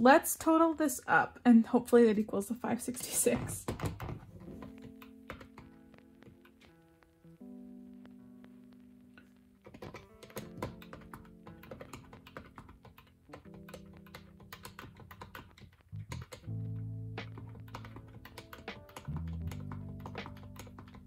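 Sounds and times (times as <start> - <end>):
background music low notes: 0.0 - 21.0
calculator keys tapping: 3.0 - 6.8, 9.2 - 21.0.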